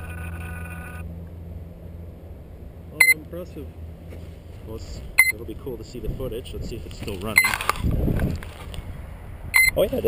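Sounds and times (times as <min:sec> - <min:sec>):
high-pitched whine: 0:00.0 - 0:06.0
wind buffeting microphone: 0:03.9 - 0:10.0.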